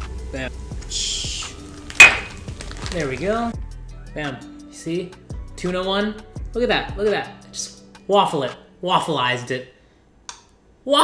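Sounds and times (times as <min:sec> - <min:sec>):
plastic bag crinkling: 0:02.4 - 0:03.3.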